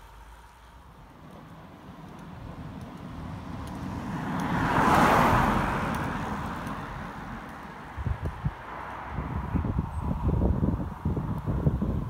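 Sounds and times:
bicycle passing with tyre whoosh: 0.1 - 12.0.

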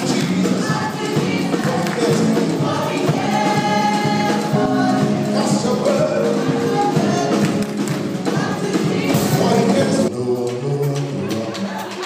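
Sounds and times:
gospel band playing: 0.0 - 12.0
voices singing together: 0.0 - 12.0.

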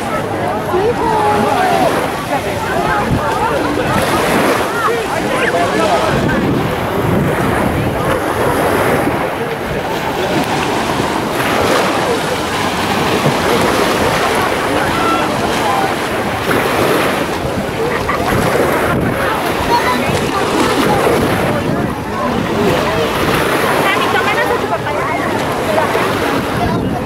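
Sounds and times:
beach crowd chatter: 0.0 - 27.0
small waves breaking on sand: 0.0 - 27.0
wind on microphone: 0.0 - 27.0.

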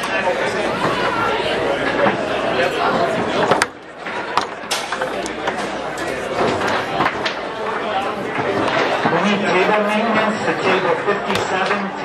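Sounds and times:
crowd chatter: 0.0 - 12.0
foosball ball clacks: 2.9 - 9.2.

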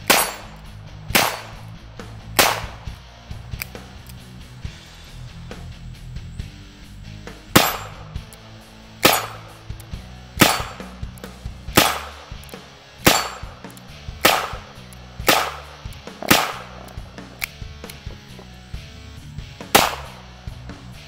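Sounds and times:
revolver shots: 0.0 - 4.0, 7.3 - 8.4, 9.0 - 18.5, 19.6 - 20.3
background music: 0.0 - 21.0.

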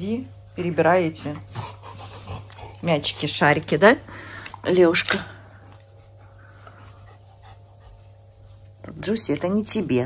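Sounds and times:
low steady hum: 0.0 - 10.0
dog panting: 1.2 - 3.6, 5.8 - 8.8.

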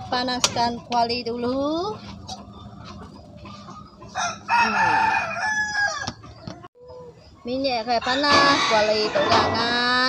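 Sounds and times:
rooster crowing: 4.1 - 6.4, 8.0 - 10.0.

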